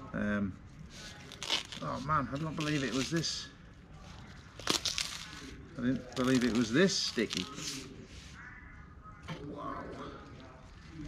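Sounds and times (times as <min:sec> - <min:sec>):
leaf wrapping crinkling: 0:01.0 - 0:07.9.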